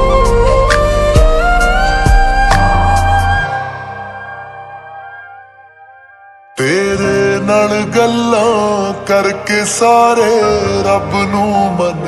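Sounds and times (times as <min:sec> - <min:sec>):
slowed pop song with reverb: 0:00.0 - 0:12.0.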